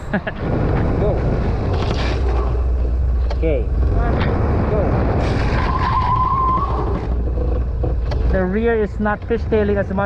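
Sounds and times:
person laughing: 0.0 - 0.5
scooter low rumble: 0.0 - 10.0
wind buffeting microphone: 0.0 - 10.0.

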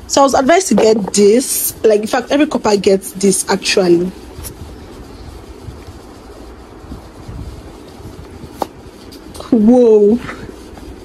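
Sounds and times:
phone microphone handling noise: 0.2 - 2.6, 3.6 - 9.6.

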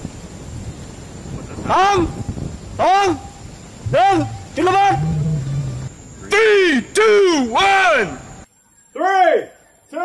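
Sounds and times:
animal crying: 3.8 - 6.0.

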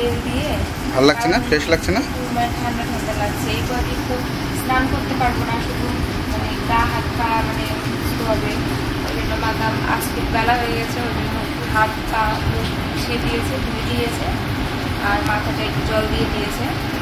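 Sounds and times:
low background rumble: 0.0 - 17.0.

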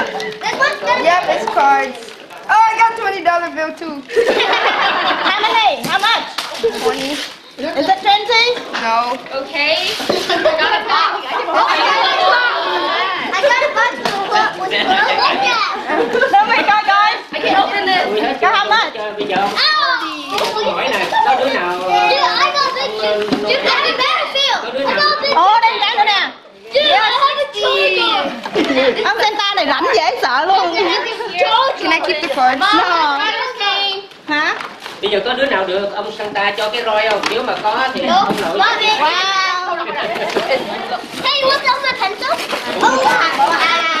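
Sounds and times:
children talking and exclaiming: 0.0 - 44.0.

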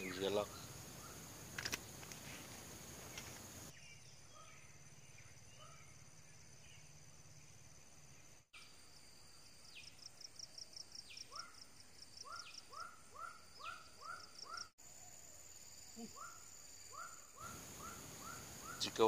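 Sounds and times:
birds calling: 0.0 - 6.0, 11.0 - 14.7, 16.2 - 19.0
insects buzzing: 0.0 - 19.0.

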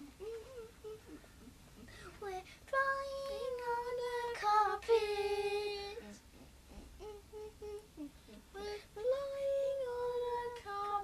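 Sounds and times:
boy singing without words: 0.0 - 11.0.

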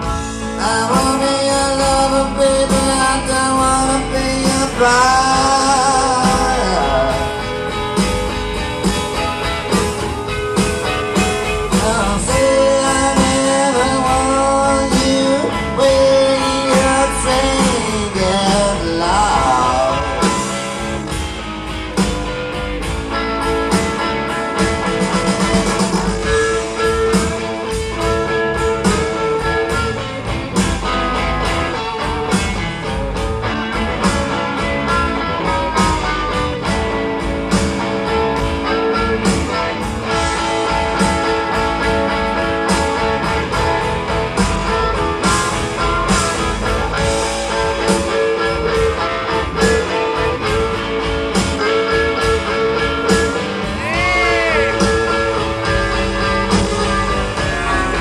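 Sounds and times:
live rock band playing: 0.0 - 58.0.

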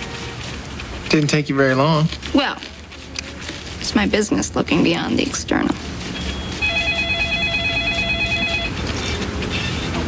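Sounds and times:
low background noise: 0.0 - 10.0
telephone ringing with electronic trill: 6.2 - 8.8.

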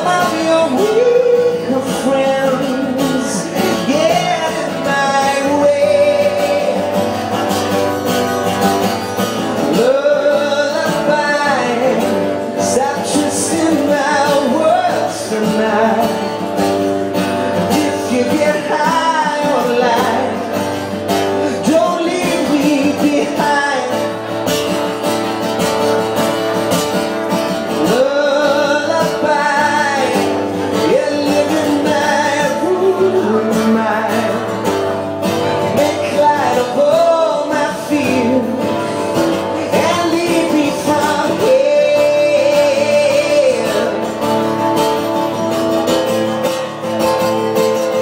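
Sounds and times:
man singing: 0.0 - 24.8, 27.1 - 48.0
acoustic guitar strumming: 0.0 - 48.0.

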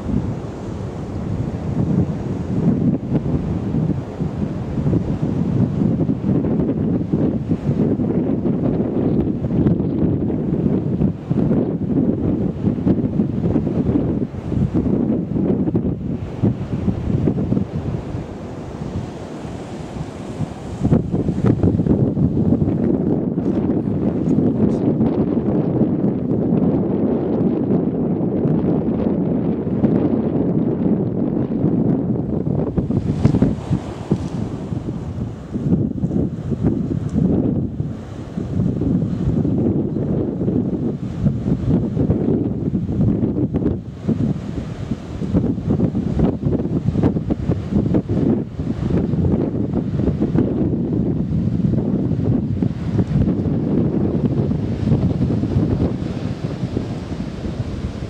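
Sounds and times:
strong wind buffeting microphone: 0.0 - 58.0.

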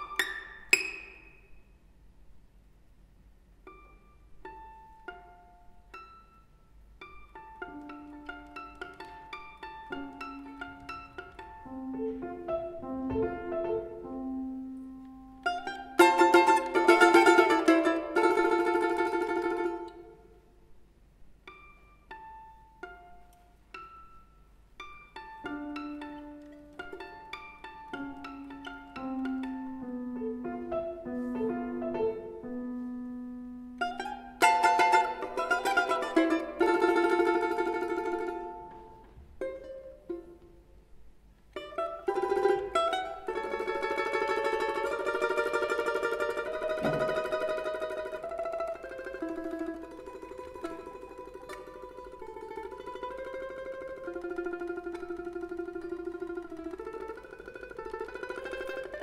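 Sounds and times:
domra plucking: 0.0 - 1.9, 3.5 - 20.6, 21.2 - 59.0
piano: 7.2 - 20.2, 25.0 - 39.2.

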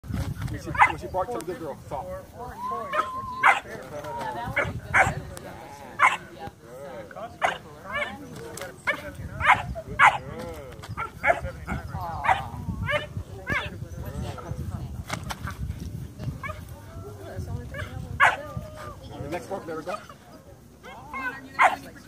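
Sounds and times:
puppy barking high-pitched: 2.9 - 3.7, 6.0 - 6.2, 7.4 - 8.1, 21.2 - 21.8.

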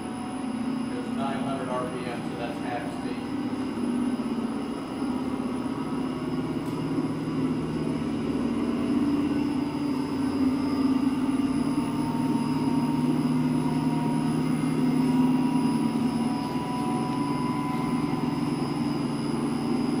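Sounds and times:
centrifuge humming with faint whine: 0.0 - 20.0.

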